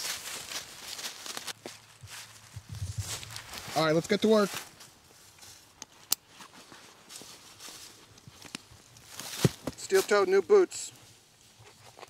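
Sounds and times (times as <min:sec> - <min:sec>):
faint rustling: 0:00.0 - 0:10.2.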